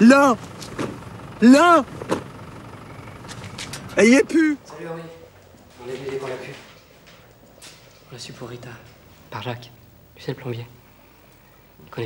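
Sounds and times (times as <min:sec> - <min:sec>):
car engine idling: 0:00.0 - 0:06.4.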